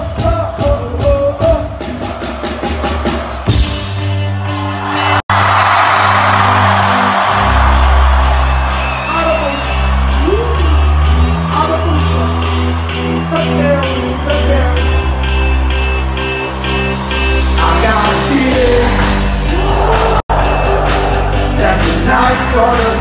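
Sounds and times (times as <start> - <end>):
live dance music: 0.0 - 23.0
crowd cheering and whooping: 1.9 - 23.0.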